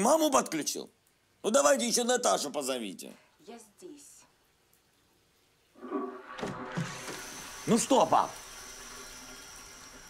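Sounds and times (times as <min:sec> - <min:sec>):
toilet flushing: 0:05.8 - 0:10.0.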